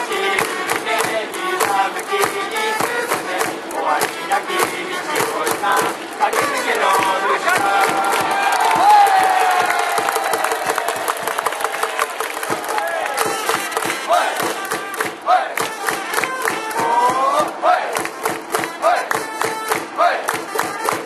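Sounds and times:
crowd chanting: 0.0 - 20.5
hands clapping: 0.1 - 17.2, 17.9 - 21.0
crowd cheering and shouting: 6.2 - 20.4.

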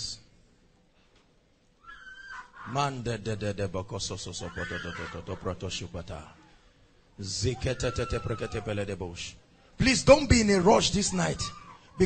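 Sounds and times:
man speaking rapidly: 2.7 - 6.4, 7.2 - 12.0.

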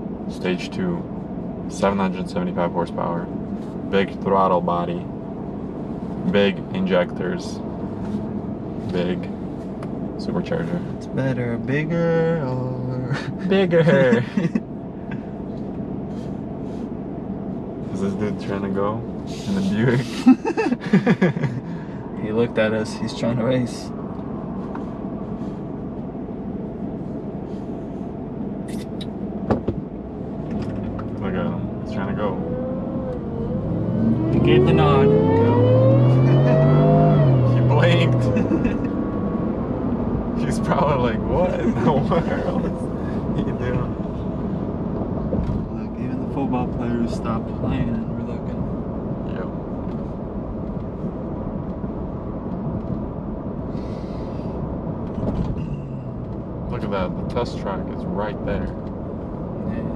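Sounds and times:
road and engine hum: 0.0 - 59.9
engine accelerating hard: 30.4 - 59.9.

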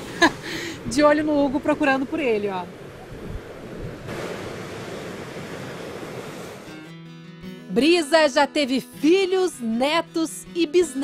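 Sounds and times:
ocean surf breaking on beach: 1.6 - 6.8.

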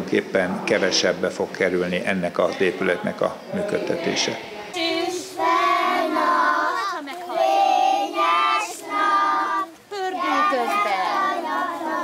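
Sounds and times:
children singing in unison: 3.8 - 12.0.

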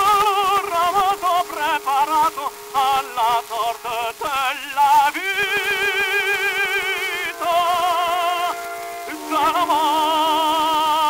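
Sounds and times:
operatic tenor singing: 0.0 - 11.0
orchestra playing: 5.3 - 10.8.

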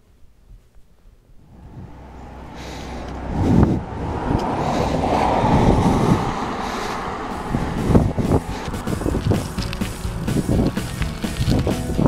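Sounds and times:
bicycle road noise: 1.4 - 12.0
wind noise: 1.4 - 12.0.

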